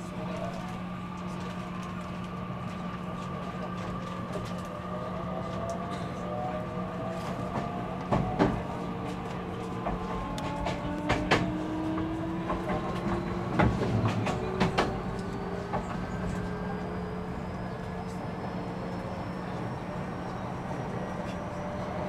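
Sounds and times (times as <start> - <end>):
electric train motor whine: 7.8 - 22.0
wheel clacks over rail joints: 9.8 - 16.4.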